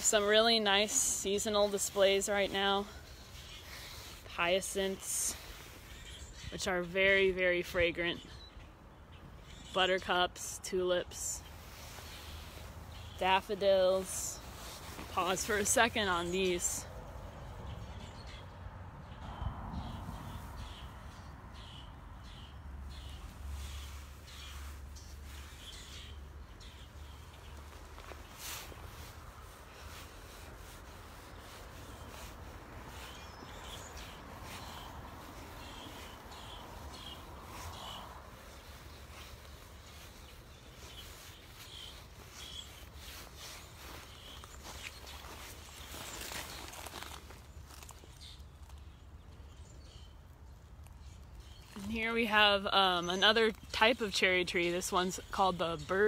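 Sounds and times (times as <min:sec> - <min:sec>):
small birds chirping: 0:00.0 - 0:56.0.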